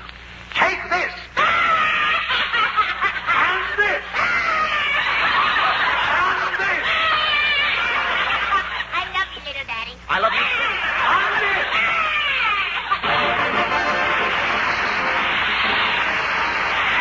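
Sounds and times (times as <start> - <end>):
studio audience laughing: 1.4 - 9.1, 10.3 - 17.0.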